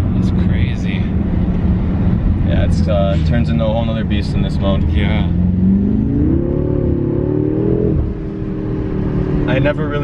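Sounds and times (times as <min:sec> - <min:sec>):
car engine accelerating hard: 0:00.0 - 0:10.0.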